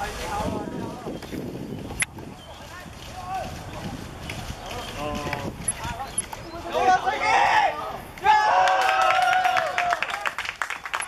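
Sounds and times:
men shouting: 6.6 - 9.6.

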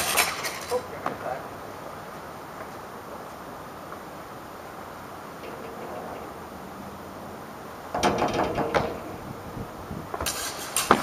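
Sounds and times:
steel rapiers knocking and scraping: 7.9 - 11.0.

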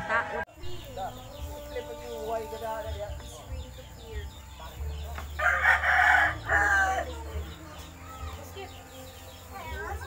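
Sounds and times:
rooster crowing: 5.4 - 7.1.

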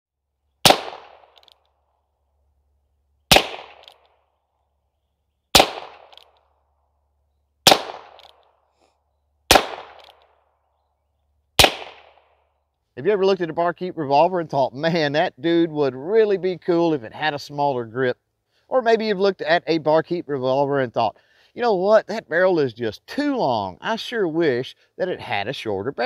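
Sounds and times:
revolver shots with echo: 0.6 - 1.4, 3.3 - 4.0, 5.6 - 6.2, 7.7 - 8.3, 9.5 - 10.1, 11.6 - 12.2.

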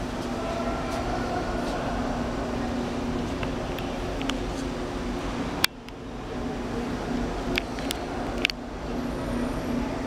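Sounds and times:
faint voices: 0.0 - 10.0
mechanical hum and rumble: 0.0 - 10.0.

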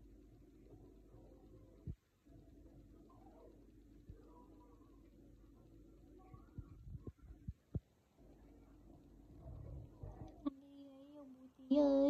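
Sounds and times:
faint low hum: 0.0 - 12.0
soft low thumps: 6.3 - 8.0.

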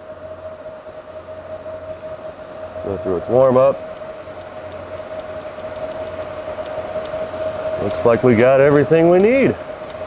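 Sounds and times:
constant whine: 0.0 - 10.0
cooling fan rushing: 0.0 - 10.0.

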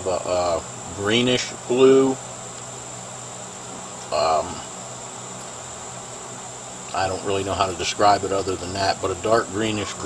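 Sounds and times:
high-pitched insect buzz: 0.0 - 10.0.

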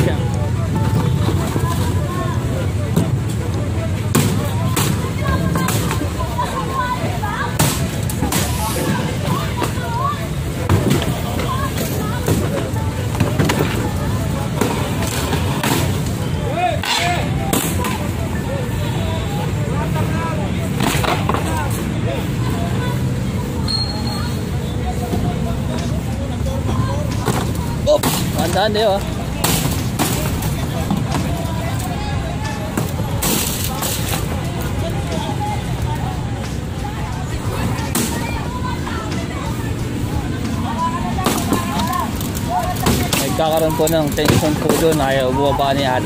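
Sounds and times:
street traffic: 0.0 - 46.0.

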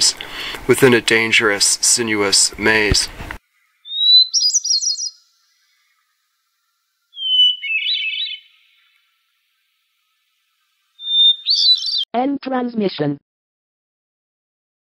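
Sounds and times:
high chirping bird calls: 3.8 - 5.9, 7.1 - 9.0, 11.0 - 12.1.

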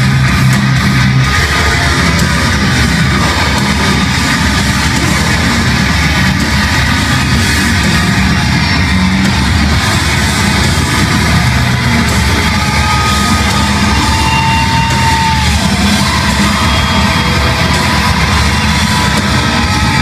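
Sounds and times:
distorted electric guitars: 0.0 - 20.0
drums: 0.0 - 20.0
heavy band playing live: 0.0 - 20.0.

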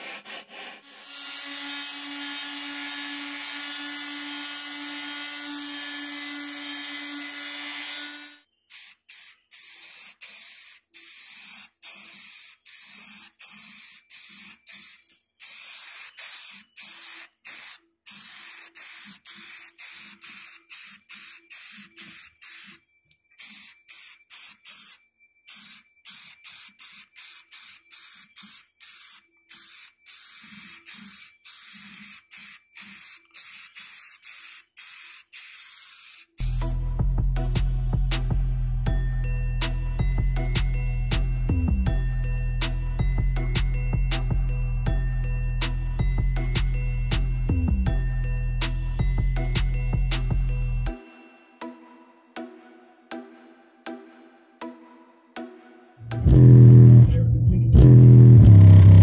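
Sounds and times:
spray paint hissing: 8.7 - 22.8, 23.4 - 36.8
music with drums: 36.4 - 50.8.

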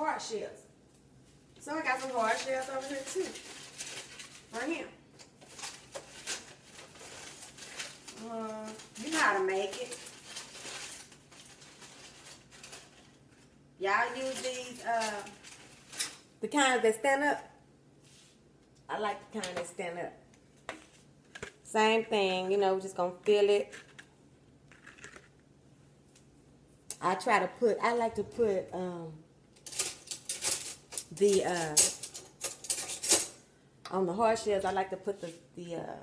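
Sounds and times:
faint rustles and clicks: 0.9 - 16.2.

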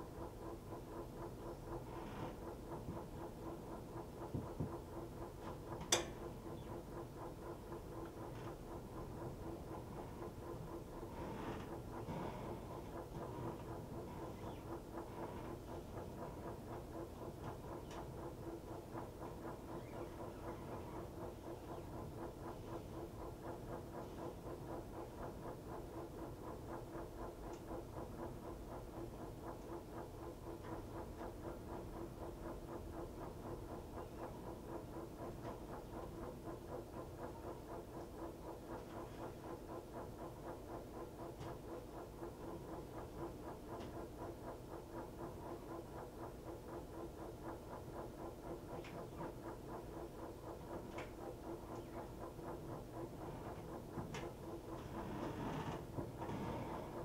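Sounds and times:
washing machine humming: 0.0 - 57.0.

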